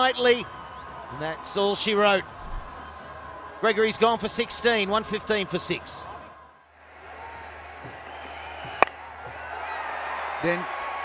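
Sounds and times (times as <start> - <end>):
stadium crowd noise: 0.0 - 11.0.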